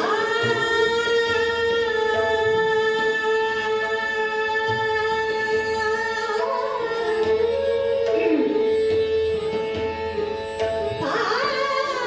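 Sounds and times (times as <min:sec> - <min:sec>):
woman singing classical vocal: 0:00.0 - 0:08.7, 0:11.0 - 0:12.0
harmonium: 0:00.0 - 0:12.0
tanpura drone: 0:00.0 - 0:12.0.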